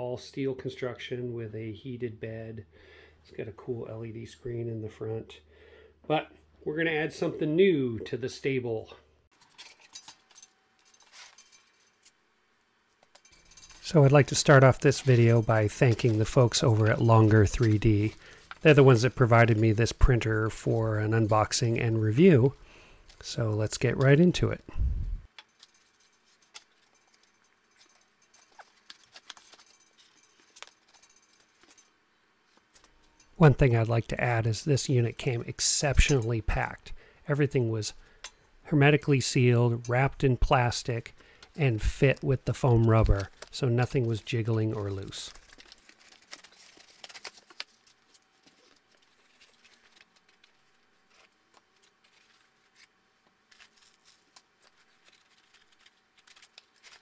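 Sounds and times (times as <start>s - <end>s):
cardboard and foam packaging rustling: 9.3s - 12.2s, 13.0s - 31.9s, 41.5s - 57.0s.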